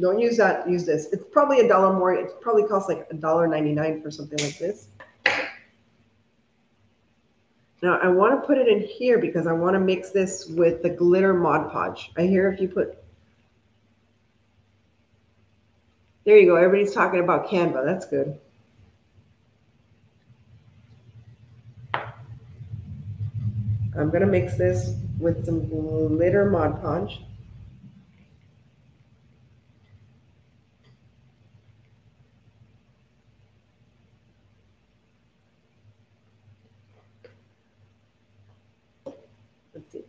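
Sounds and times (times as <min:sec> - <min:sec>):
low rumble of hand handling: 0:20.2 - 0:29.2.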